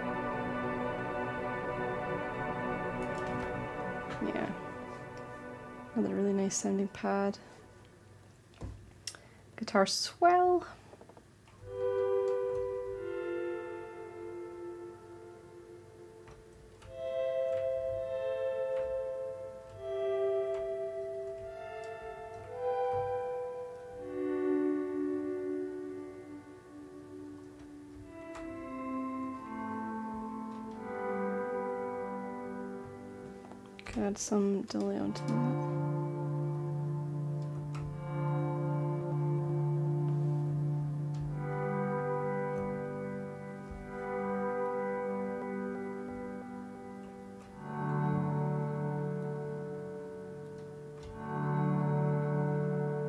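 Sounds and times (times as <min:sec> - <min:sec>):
swelling electric guitar chords: 0:00.0 - 0:08.7, 0:11.6 - 0:53.0.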